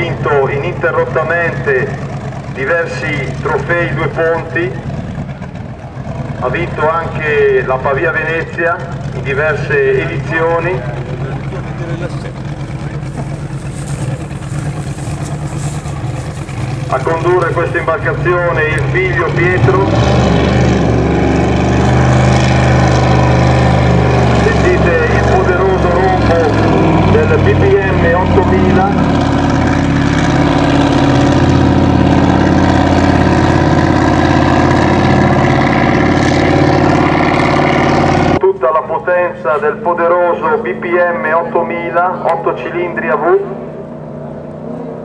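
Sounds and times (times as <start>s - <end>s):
racing boat engine drone: 0.0s - 45.0s.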